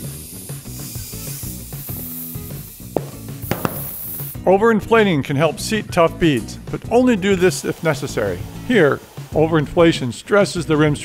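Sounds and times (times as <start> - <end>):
compressed air hissing into tire: 0.0 - 4.4, 7.3 - 10.0
background music: 0.0 - 11.0.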